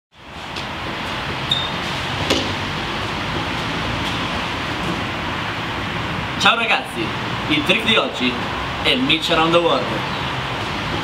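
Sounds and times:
outdoor ambience hiss: 0:00.1 - 0:11.0.

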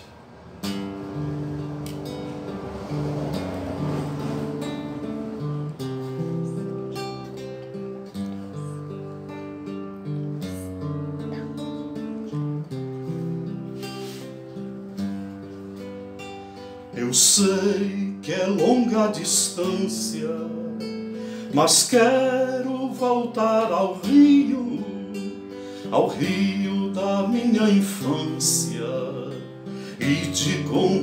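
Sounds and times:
classical acoustic guitar: 0:00.0 - 0:31.0.

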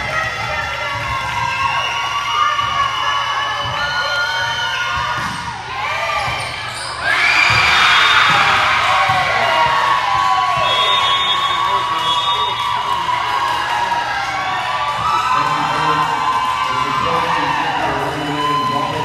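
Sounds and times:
crowd cheering and shouting: 0:00.0 - 0:19.0
players calling out: 0:00.0 - 0:19.0
shoes squeaking on wooden court: 0:06.2 - 0:08.4.

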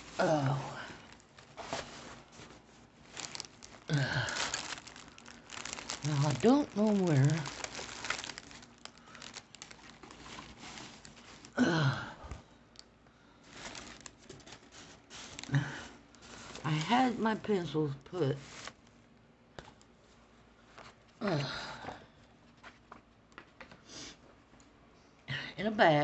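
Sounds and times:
rustling plastic packaging: 0:00.0 - 0:11.8, 0:13.4 - 0:19.0.

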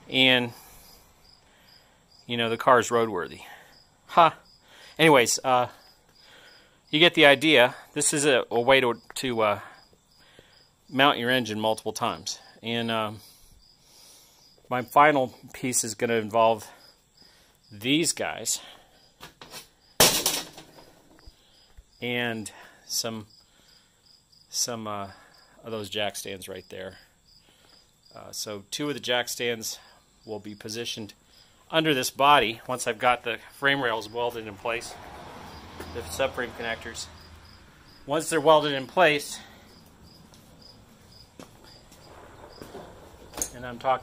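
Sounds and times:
cricket chirping: 0:00.0 - 0:44.0
hardware clattering on workbench: 0:19.2 - 0:21.2, 0:42.4 - 0:43.6.

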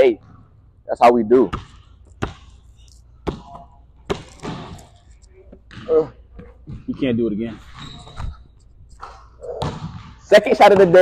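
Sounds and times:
basketball bouncing on wooden floor: 0:01.5 - 0:02.6, 0:03.2 - 0:04.8, 0:09.5 - 0:11.0.

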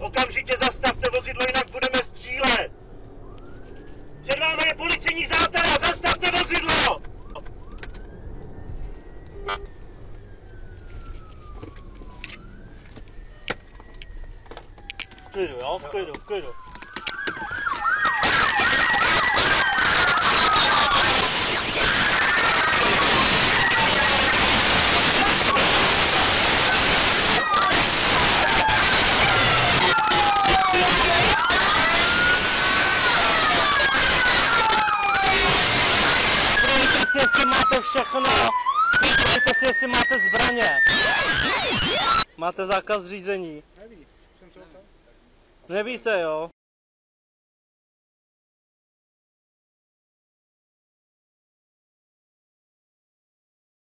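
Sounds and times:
police siren wailing: 0:00.0 - 0:42.3
fast warbling siren tone: 0:03.1 - 0:42.4
loud rush of noise: 0:18.0 - 0:42.3.

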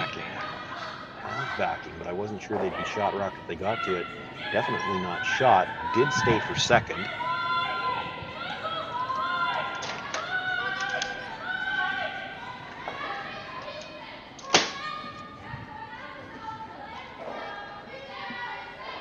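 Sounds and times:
people talking in echoing rink: 0:00.0 - 0:19.0.

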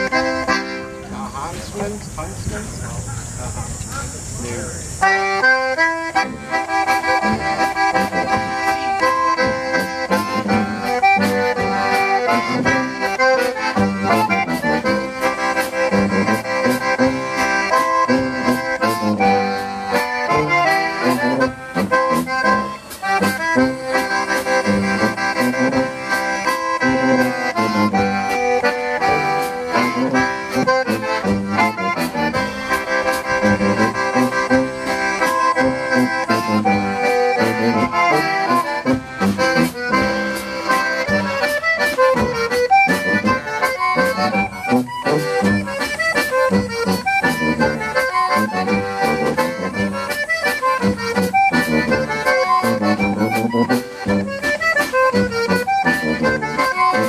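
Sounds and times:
concertina melody: 0:00.0 - 0:02.8, 0:04.4 - 0:57.0
tuba bass line: 0:00.0 - 0:57.0
drum kit beat: 0:05.0 - 0:57.0.

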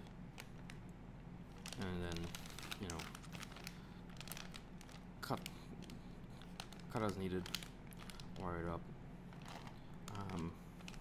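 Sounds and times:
plastic bag crinkling: 0:01.4 - 0:11.0.

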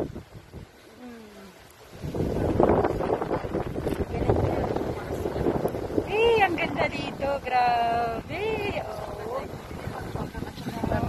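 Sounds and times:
wind buffeting microphone: 0:00.0 - 0:00.9, 0:01.6 - 0:11.0.

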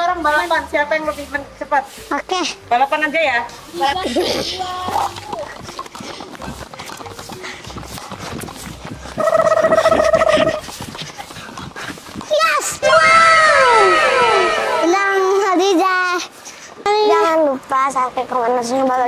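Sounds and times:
low outdoor noise: 0:00.0 - 0:19.0
child shouting: 0:12.3 - 0:15.5
cartoon sliding whistle tones: 0:12.9 - 0:15.0.

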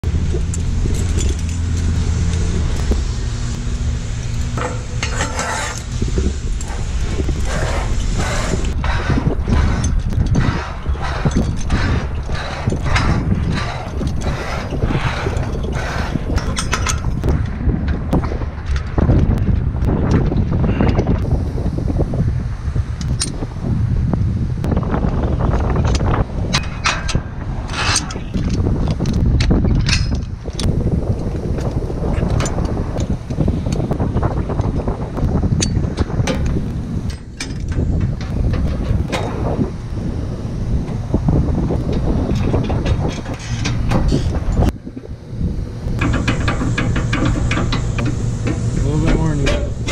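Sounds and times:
steady low hum: 0:00.0 - 0:49.9
wind rumbling on microphone: 0:00.0 - 0:49.9
metal gear clinking on steel: 0:00.4 - 0:02.4.

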